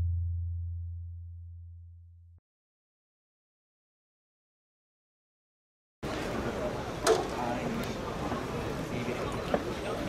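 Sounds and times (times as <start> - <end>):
low humming bass tone: 0.0 - 2.4.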